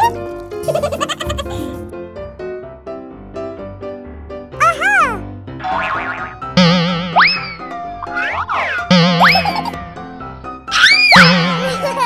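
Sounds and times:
children's background music: 0:00.0 - 0:01.9, 0:03.7 - 0:12.0
warbling wobbling tones: 0:06.6 - 0:09.5.

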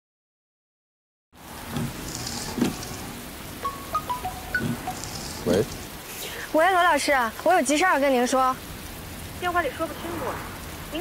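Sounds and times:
rain falling: 0:01.4 - 0:11.0
high chime-like notes: 0:03.6 - 0:05.4.

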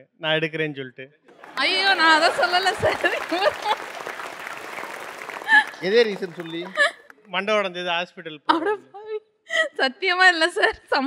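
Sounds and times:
studio audience applauding: 0:01.3 - 0:07.2.

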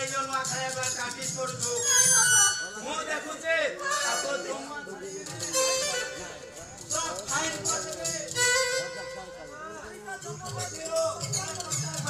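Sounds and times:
stage music: 0:00.1 - 0:12.0.

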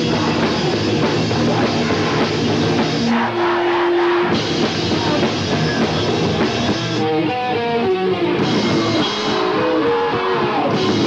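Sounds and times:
screamo band playing: 0:00.0 - 0:11.0.

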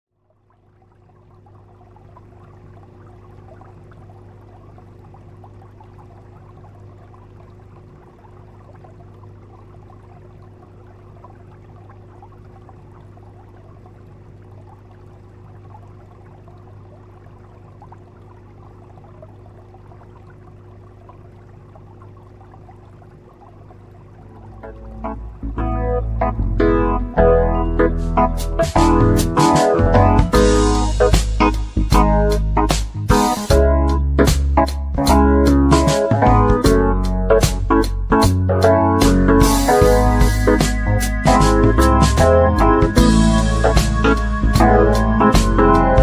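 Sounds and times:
underwater water ambience: 0:00.1 - 0:46.0
low hum: 0:00.2 - 0:46.0.

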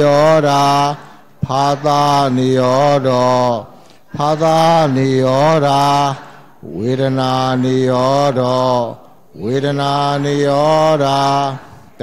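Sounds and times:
low-pitched chanting: 0:00.0 - 0:12.0.

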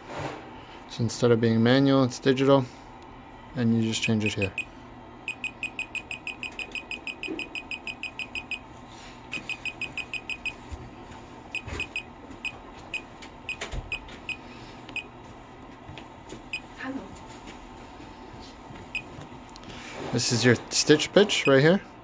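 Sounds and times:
short high beeps: 0:05.3 - 0:08.6, 0:09.4 - 0:10.6.

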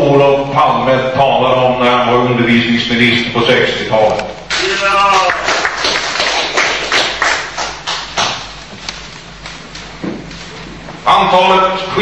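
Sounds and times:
audience applause: 0:04.5 - 0:08.4.

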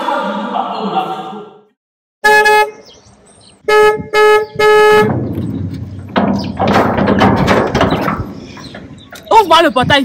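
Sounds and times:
metal gate clattering open: 0:05.1 - 0:09.4.

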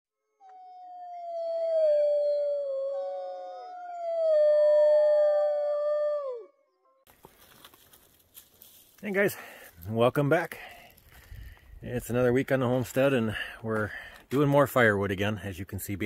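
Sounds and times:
wolves howling: 0:00.5 - 0:06.5.

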